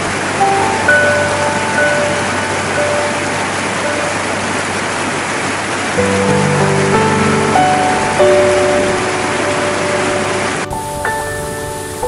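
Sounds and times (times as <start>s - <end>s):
soft music with held notes: 0.0s - 5.1s, 6.0s - 12.0s
water rushing in a cascade: 0.0s - 12.0s.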